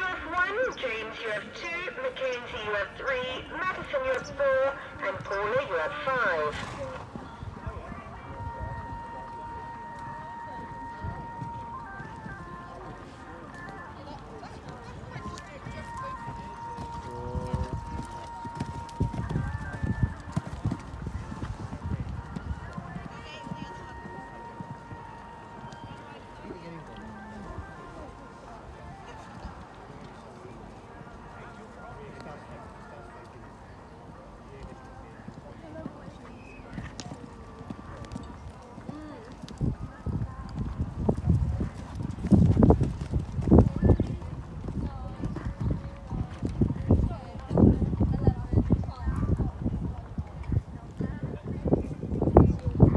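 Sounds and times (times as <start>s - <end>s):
horse hooves cantering on sand: 2.7s - 52.9s.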